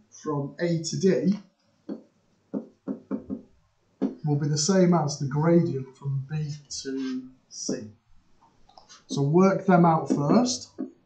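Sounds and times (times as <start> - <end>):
stylus tapping on tablet: 1.9 - 3.4, 4.0 - 4.2.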